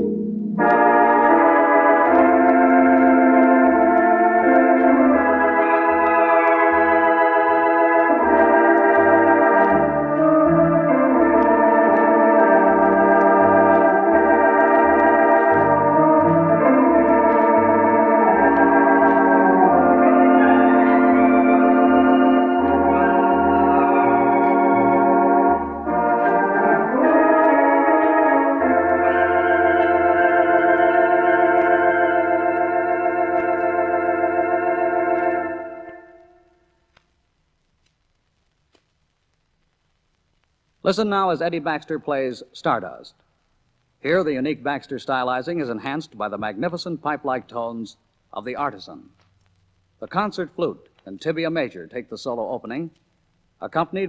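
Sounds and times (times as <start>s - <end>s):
theatre organ playing ballad: 0.0s - 36.4s.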